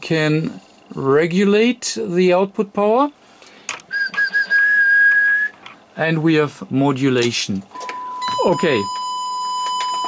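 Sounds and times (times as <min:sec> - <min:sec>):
person whistling steady note: 0:03.9 - 0:05.6.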